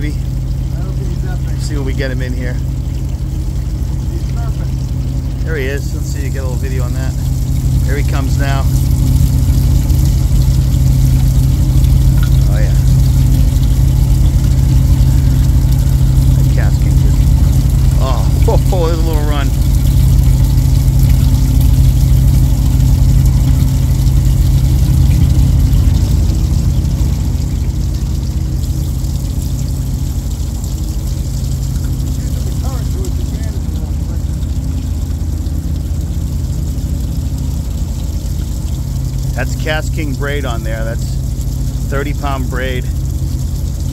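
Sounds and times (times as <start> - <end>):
boat engine idling: 0.0 - 43.9.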